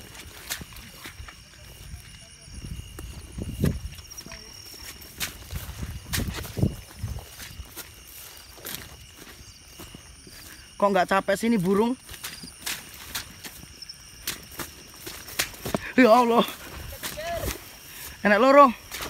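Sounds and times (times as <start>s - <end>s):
footsteps through vegetation: 0.0s - 19.0s
night insects chirring: 0.0s - 19.0s.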